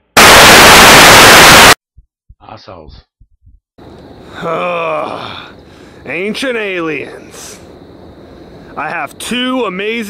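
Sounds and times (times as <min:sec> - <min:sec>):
tv static hiss: 0:00.2 - 0:01.8.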